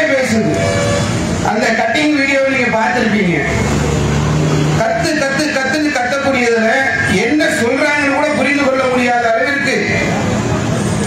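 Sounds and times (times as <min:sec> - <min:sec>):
man speaking over public address: 0:00.0 - 0:03.8, 0:04.8 - 0:10.4.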